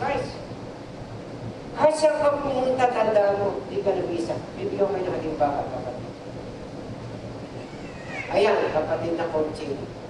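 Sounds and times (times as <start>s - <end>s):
large hall room noise: 0.0s - 10.0s.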